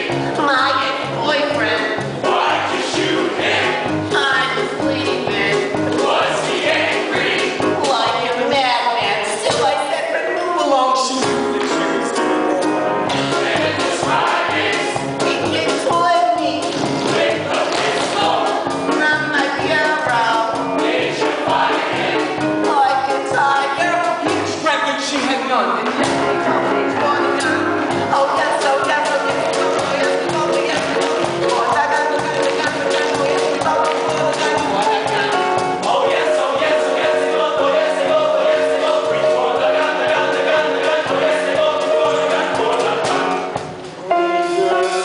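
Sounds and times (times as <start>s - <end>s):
mixed chorus singing: 0.0s - 0.4s, 1.8s - 9.3s, 13.0s - 15.5s, 16.8s - 19.0s, 19.6s - 22.7s, 29.0s - 43.7s
instrumental accompaniment: 0.0s - 45.0s.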